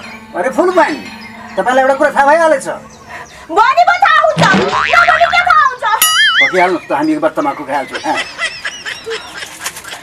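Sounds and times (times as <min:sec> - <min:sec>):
boing comedy sound effect: 0:04.4 - 0:06.5.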